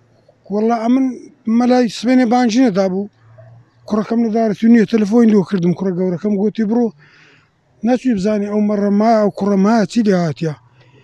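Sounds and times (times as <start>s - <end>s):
man talking loudly: 3.9s - 6.9s, 7.8s - 10.6s.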